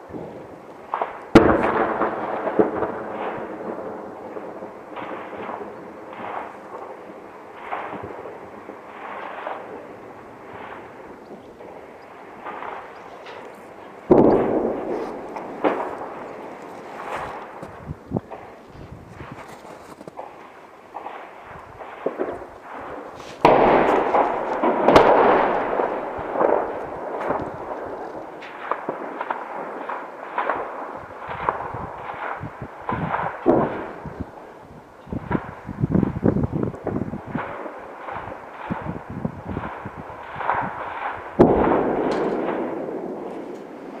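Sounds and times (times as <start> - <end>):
gunfire crackle: 0.0 - 44.0
loud echoing blasts: 0.0 - 44.0.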